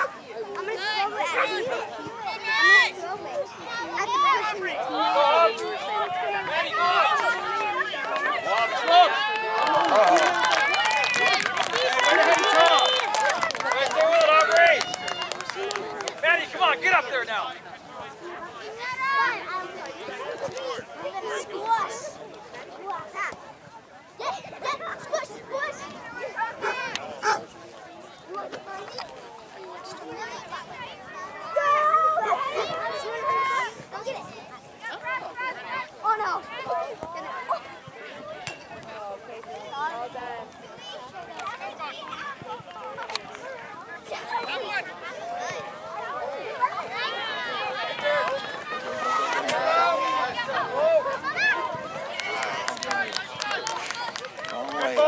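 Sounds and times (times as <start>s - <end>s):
players and spectators shouting: 0.0s - 23.4s, 24.2s - 55.0s
people clapping: 7.2s - 17.0s, 48.0s - 55.0s.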